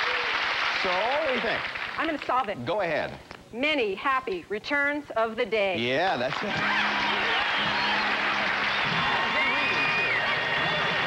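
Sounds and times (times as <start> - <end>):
audience applauding: 0.0 - 2.2, 6.3 - 11.0.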